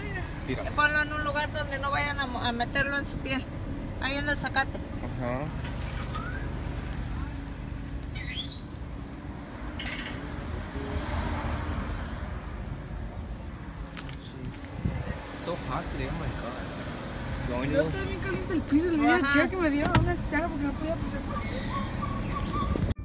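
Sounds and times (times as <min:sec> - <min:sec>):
road traffic rumble: 0:00.0 - 0:23.0.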